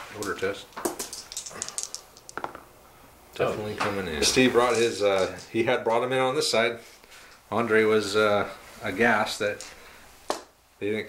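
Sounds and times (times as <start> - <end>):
dice clicking on table: 0.8 - 2.6.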